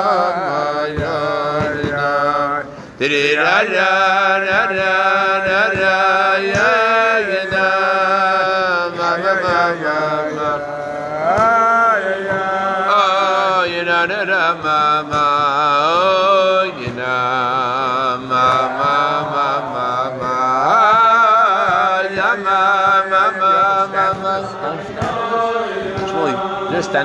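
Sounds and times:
man singing wordless melody: 0.0 - 27.0.

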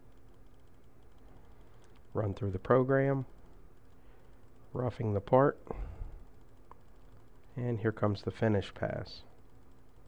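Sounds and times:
faint low hum: 0.0 - 10.0
rapid faint ticking: 0.0 - 10.0.

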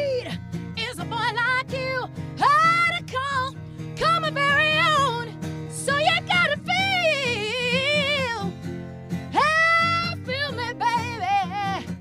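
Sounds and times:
woman singing wordless notes: 0.0 - 8.5, 9.4 - 11.9
acoustic guitar chords: 0.0 - 12.0.

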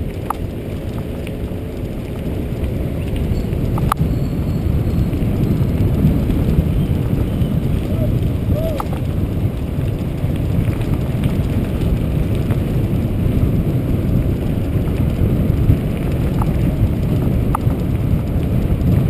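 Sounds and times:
bike tyres on gravel: 0.0 - 19.0
wind buffeting microphone: 0.0 - 19.0.

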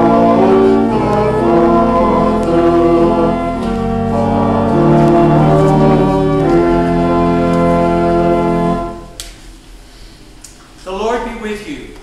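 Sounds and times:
choir singing: 0.0 - 9.1
organ chords: 0.0 - 9.4.

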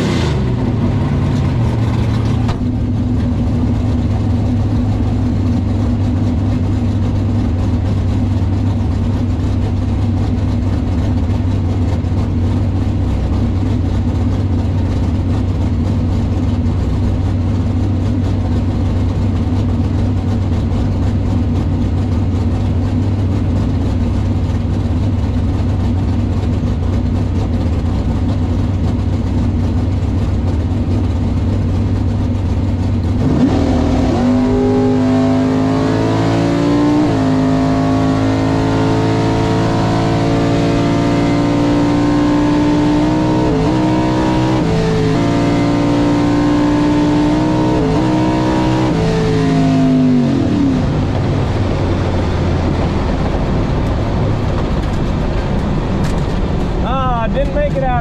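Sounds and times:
car engine idling and revving: 0.0 - 58.0.

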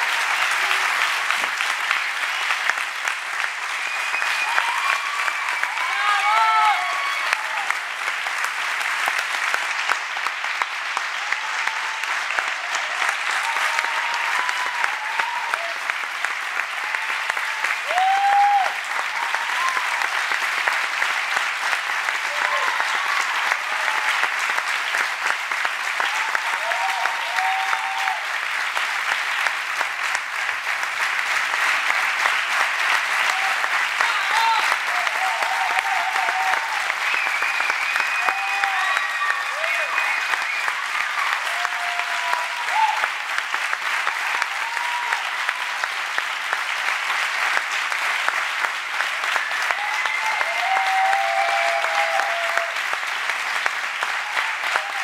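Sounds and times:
audience applauding: 0.0 - 55.0.

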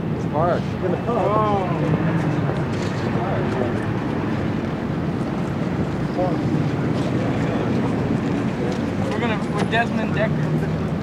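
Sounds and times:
steady rumbling noise: 0.0 - 11.0.

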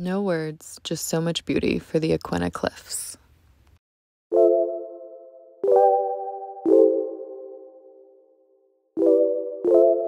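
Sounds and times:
soft electronic keyboard chords: 4.3 - 10.0.

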